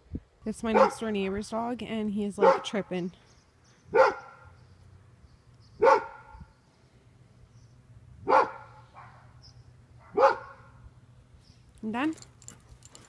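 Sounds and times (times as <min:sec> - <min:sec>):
dog barking: 0:00.7 - 0:01.0, 0:02.4 - 0:02.8, 0:03.9 - 0:04.5, 0:05.8 - 0:06.4, 0:08.3 - 0:09.4, 0:10.0 - 0:10.8.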